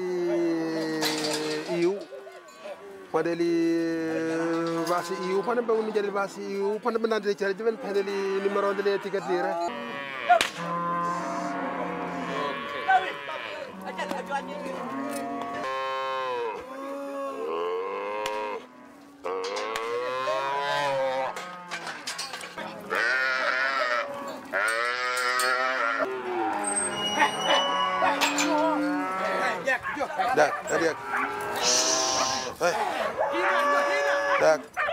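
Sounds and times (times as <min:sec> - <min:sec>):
cattle mooing: 0:04.0 - 0:06.0, 0:07.6 - 0:34.9.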